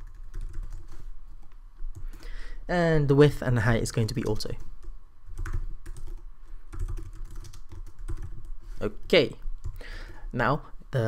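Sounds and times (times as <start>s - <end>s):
computer keyboard typing: 0.0s - 1.0s, 4.1s - 8.6s, 9.4s - 10.2s.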